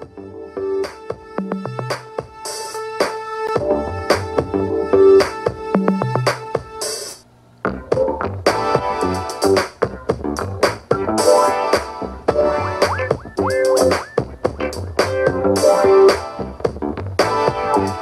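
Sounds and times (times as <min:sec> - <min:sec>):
song through headphones: 0:00.0 - 0:06.9, 0:10.9 - 0:18.0.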